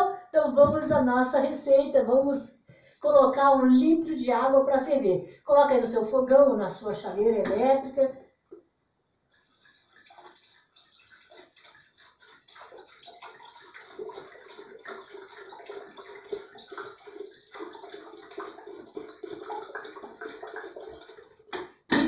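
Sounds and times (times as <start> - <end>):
water pouring into kettle: 9.3 - 21.6.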